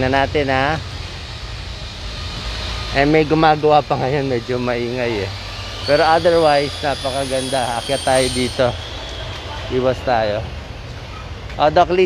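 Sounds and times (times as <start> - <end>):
construction work rumble: 0.0 - 12.0.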